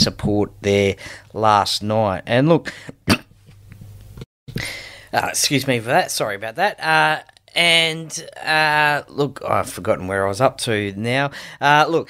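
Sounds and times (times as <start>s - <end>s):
man coughing: 2.7s - 3.3s
breathy hiss: 4.5s - 5.2s.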